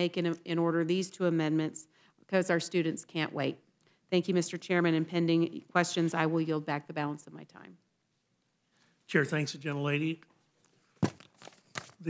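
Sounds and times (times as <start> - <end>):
paper rustling: 11.0 - 12.0.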